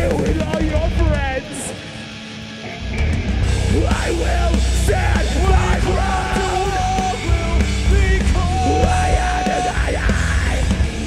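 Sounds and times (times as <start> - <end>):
bass guitar: 0.0 - 11.0
distorted electric guitars: 0.0 - 11.0
drums: 0.0 - 11.0
person yelling vocals: 3.7 - 10.7.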